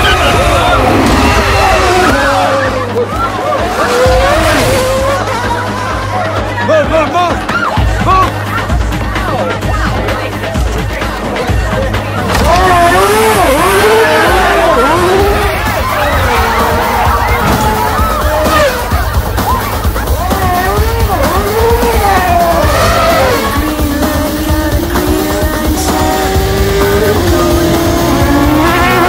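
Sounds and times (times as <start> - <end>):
people shouting: 0.0 - 8.6, 12.2 - 29.0
race car engines revving: 0.0 - 29.0.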